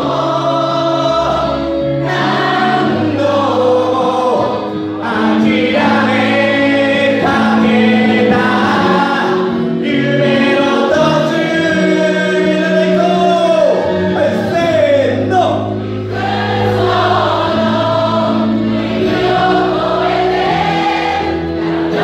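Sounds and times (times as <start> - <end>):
group of people singing: 0.0 - 22.0.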